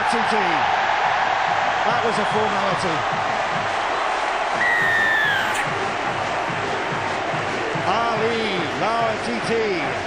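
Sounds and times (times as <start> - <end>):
stadium crowd cheering: 0.0 - 10.0
falling whistle: 4.6 - 5.7.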